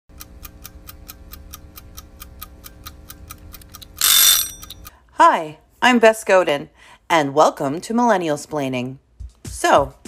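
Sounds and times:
regular ticking: 0.1s - 4.9s.

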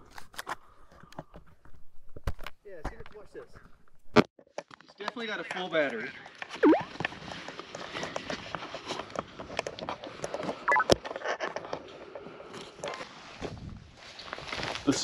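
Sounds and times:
short high chirp: 6.6s - 6.9s.

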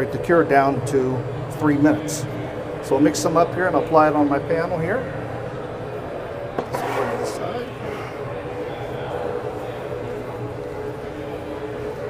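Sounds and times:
distant voices: 0.0s - 12.0s
scraping on a board: 6.6s - 7.6s.

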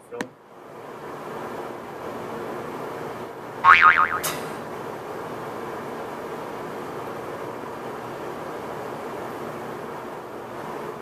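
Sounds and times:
boing-like warble: 3.7s - 4.5s
sharp click: 4.2s - 4.6s.

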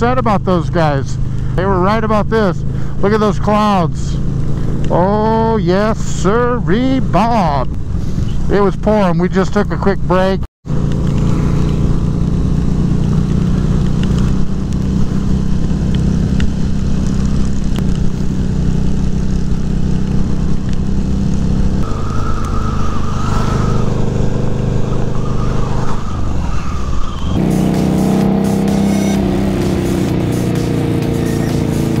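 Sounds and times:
wind rush on microphone: 7.5s - 8.5s, 11.1s - 27.5s
motorcycle engine running: 10.7s - 26.2s, 27.4s - 32.0s.

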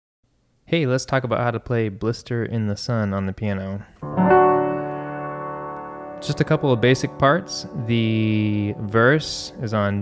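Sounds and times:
piano chord ringing: 4.0s - 10.0s.

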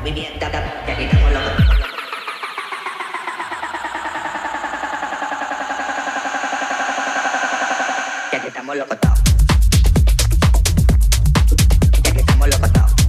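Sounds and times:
electronic beat with kick drum: 0.0s - 8.4s, 9.0s - 13.0s
stuttering voice-like sample: 8.2s - 9.3s.

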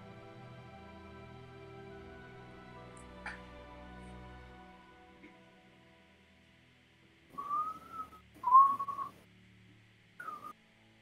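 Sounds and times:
person whistling short notes: 7.4s - 9.2s, 10.2s - 10.6s.

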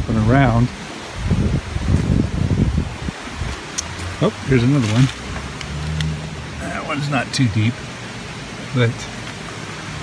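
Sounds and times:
wind buffeting microphone: 0.0s - 6.6s.

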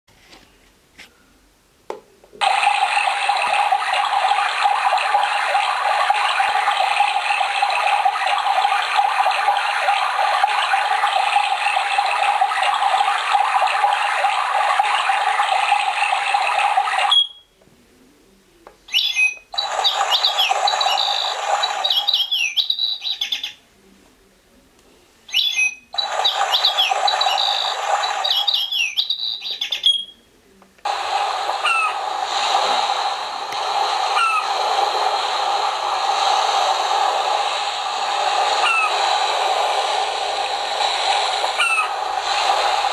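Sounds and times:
rushing water sound track: 2.4s - 17.3s, 19.6s - 22.6s, 26.0s - 29.2s, 30.9s - 42.9s
birds chirping: 18.9s - 23.6s, 25.3s - 30.2s, 41.6s - 42.0s.

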